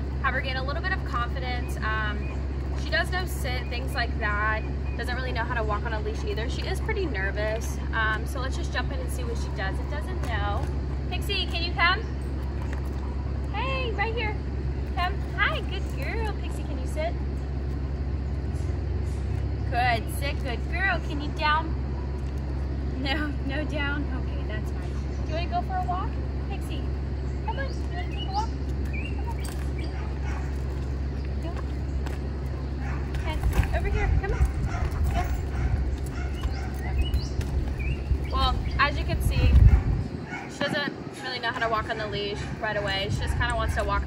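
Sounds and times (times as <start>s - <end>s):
low background rumble: 0.0s - 44.0s
woman calling a dog: 0.2s - 12.1s, 13.4s - 17.2s, 19.7s - 21.8s, 22.9s - 30.2s, 31.3s - 31.8s, 33.0s - 36.5s, 38.3s - 44.0s
dog whining: 27.4s - 31.6s, 32.6s - 38.0s.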